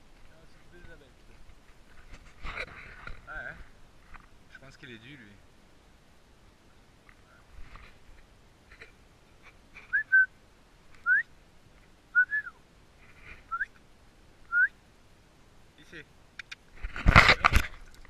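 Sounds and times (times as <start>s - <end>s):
person whistling short rising notes: 9.9s - 10.3s, 11.0s - 11.3s, 12.2s - 12.6s, 13.5s - 13.7s, 14.5s - 14.7s.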